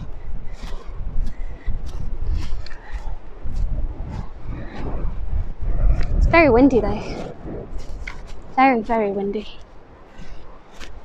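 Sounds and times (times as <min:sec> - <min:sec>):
wind buffeting microphone: 0:00.0 - 0:11.0
footsteps on pine needles and twigs: 0:07.6 - 0:11.0.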